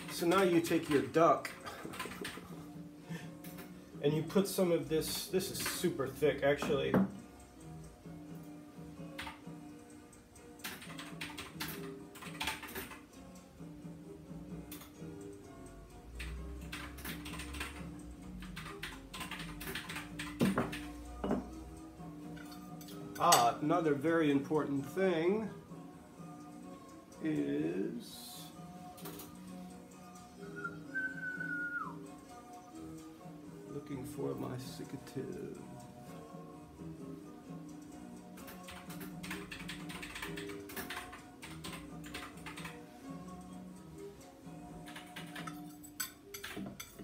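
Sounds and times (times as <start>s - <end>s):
faint music: 0.0s - 47.0s
spoon tapping and scraping glass jar: 45.4s - 47.0s.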